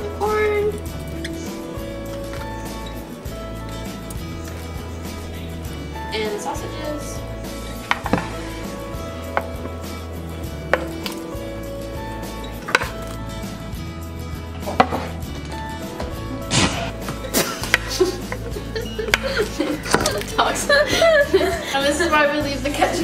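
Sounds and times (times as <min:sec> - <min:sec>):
background music: 0:00.0 - 0:23.0.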